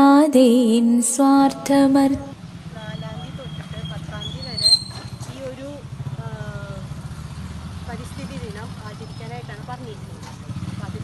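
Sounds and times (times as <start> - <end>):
vehicle engine idling: 1.2 - 11.0.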